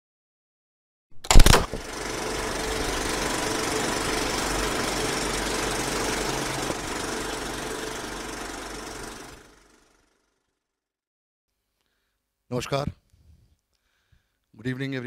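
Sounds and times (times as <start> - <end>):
mechanical whirring clatter: 1.2 - 10.1.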